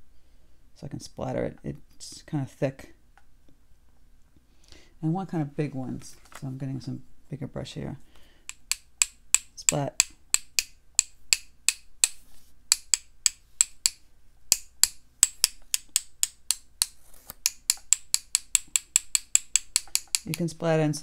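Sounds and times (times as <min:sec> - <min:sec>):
paintbrush tapping on brush handle: 0:08.5 - 0:20.6.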